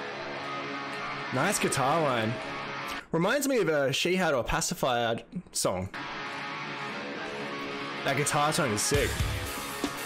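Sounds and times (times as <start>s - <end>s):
electric guitar metal playing: 0.0s - 3.0s, 5.9s - 10.0s.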